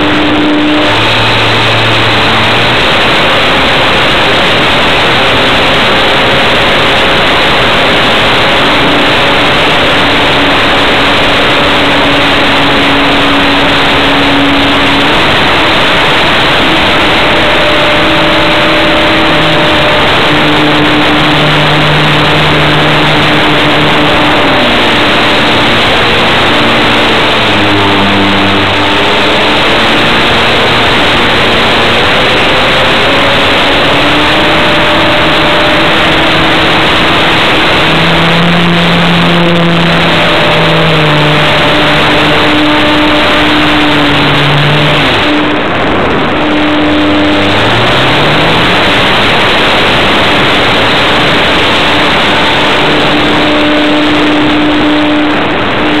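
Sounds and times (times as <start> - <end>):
electric motor and propeller whine: 0.0 - 56.0
wind rushing over microphone: 0.0 - 56.0.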